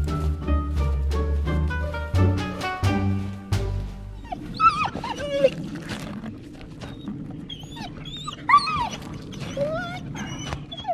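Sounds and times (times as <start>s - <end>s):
dog whining: 4.2s - 5.7s, 6.9s - 10.9s.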